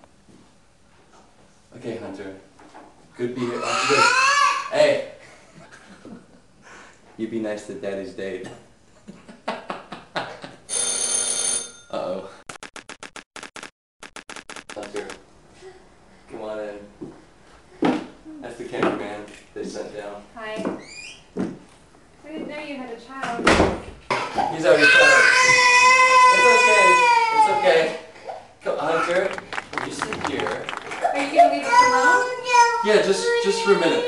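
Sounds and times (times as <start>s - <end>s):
baby crying: 3.4s - 4.8s, 24.6s - 29.3s, 31.2s - 34.0s
electronic ring: 10.7s - 12.0s.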